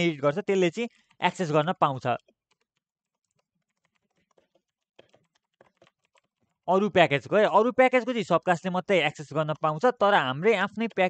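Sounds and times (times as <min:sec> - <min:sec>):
faint keyboard typing: 0:00.7 - 0:06.9.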